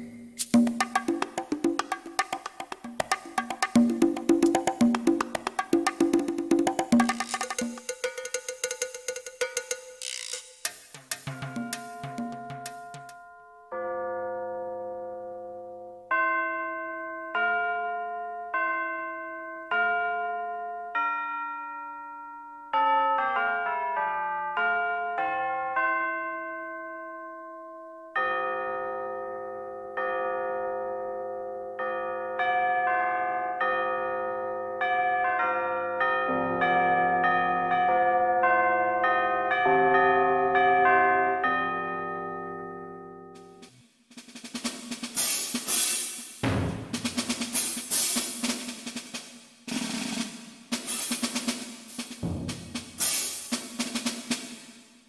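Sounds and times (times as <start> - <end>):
rapid percussion roll: 0.0 - 13.1, 43.6 - 54.8.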